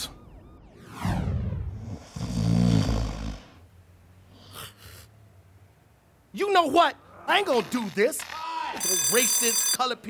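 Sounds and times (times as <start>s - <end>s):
person snoring: 1.9s - 3.6s.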